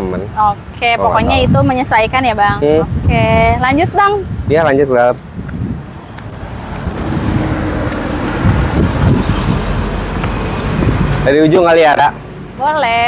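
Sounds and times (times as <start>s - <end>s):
road traffic noise: 0.0s - 13.0s.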